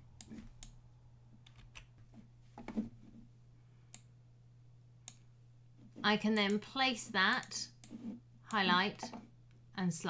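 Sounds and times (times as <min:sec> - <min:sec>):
steady low hum: 0:00.0 - 0:10.0
computer mouse clicks: 0:03.9 - 0:04.1, 0:05.0 - 0:05.3.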